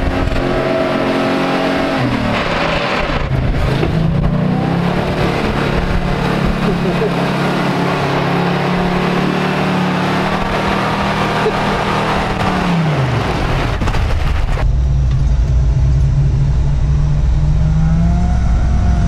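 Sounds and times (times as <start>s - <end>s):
vehicle engine pulling through mud: 0.0s - 19.0s
mud and water splashing: 2.4s - 14.7s.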